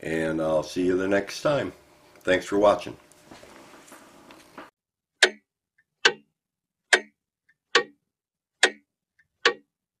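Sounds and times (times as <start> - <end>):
mechanical clock ticking: 5.2 - 8.0, 8.6 - 9.7.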